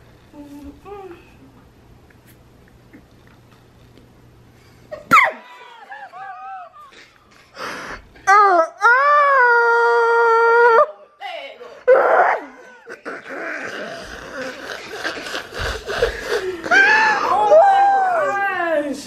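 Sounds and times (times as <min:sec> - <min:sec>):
short yelps: 0:05.1 - 0:05.5
breathy noise: 0:12.5 - 0:17.4.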